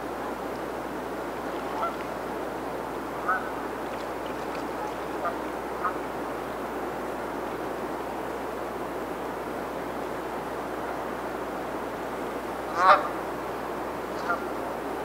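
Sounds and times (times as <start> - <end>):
steady background noise: 0.0 - 15.0.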